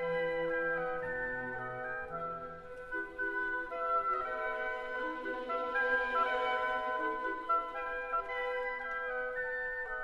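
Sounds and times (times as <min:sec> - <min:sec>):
woodwinds playing held notes: 0:00.0 - 0:10.0.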